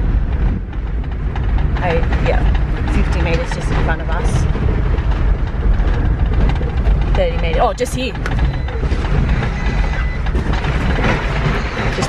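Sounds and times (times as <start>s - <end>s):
low engine rumble: 0.0s - 12.0s
vehicle knocks and rattles: 0.0s - 12.0s.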